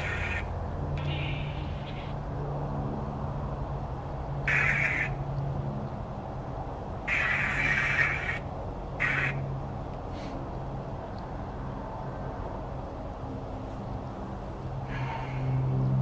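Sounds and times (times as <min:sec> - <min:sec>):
steady low hum: 0:00.0 - 0:16.0
scratchy chopped noise bursts: 0:04.5 - 0:05.1.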